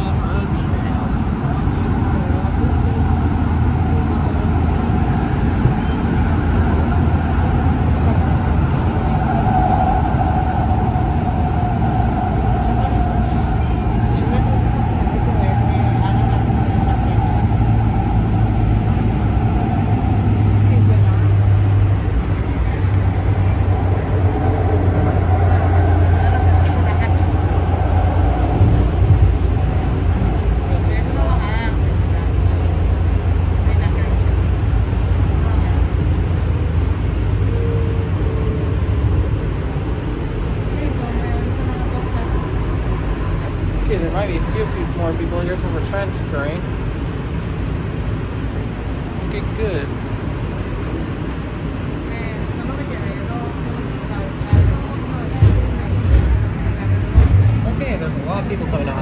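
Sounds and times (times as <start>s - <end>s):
steady hum: 0.0s - 59.0s
train wheels rumbling: 0.0s - 59.0s.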